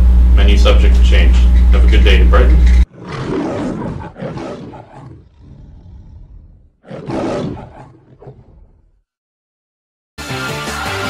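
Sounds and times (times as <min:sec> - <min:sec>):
lion roaring: 0:02.8 - 0:09.0.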